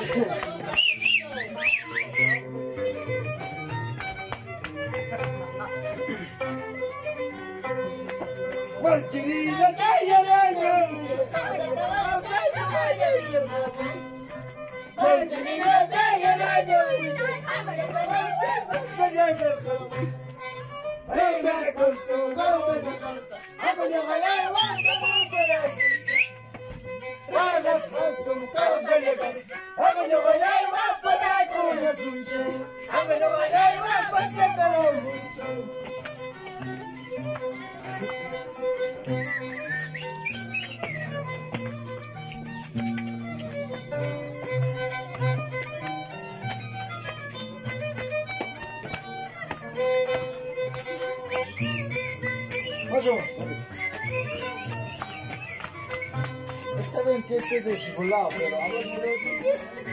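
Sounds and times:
violin melody: 0:00.0 - 0:59.9
high wavering whistle: 0:00.8 - 0:02.5, 0:24.5 - 0:26.4, 0:39.1 - 0:41.2, 0:51.3 - 0:56.2.

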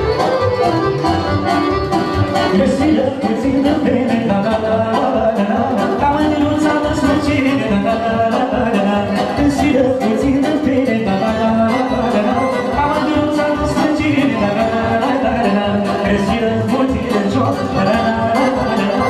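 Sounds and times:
folk band playing dance music: 0:00.0 - 0:19.0
person singing: 0:00.1 - 0:19.0.

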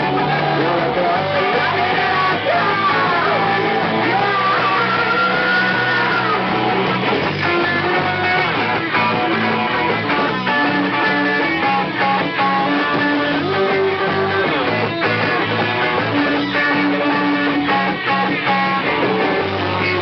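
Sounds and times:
rock band playing live: 0:00.0 - 0:20.0.

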